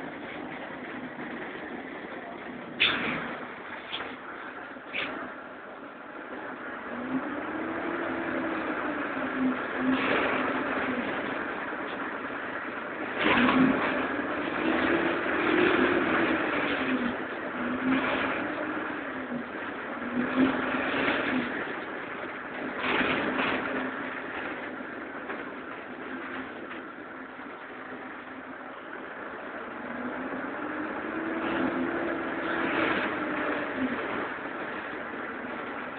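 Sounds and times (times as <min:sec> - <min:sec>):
bus engine accelerating: 0:00.0 - 0:35.9
road noise: 0:00.0 - 0:35.9.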